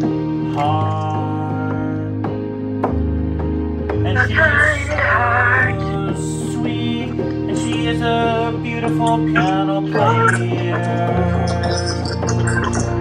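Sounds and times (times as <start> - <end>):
electronic keyboard chords: 0.0 - 13.0
wavering keyboard melody: 0.0 - 13.0.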